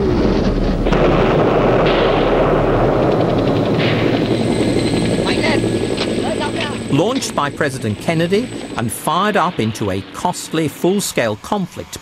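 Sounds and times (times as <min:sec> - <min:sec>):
large explosion roar: 0:00.0 - 0:11.5
rapid rattle: 0:00.8 - 0:10.9.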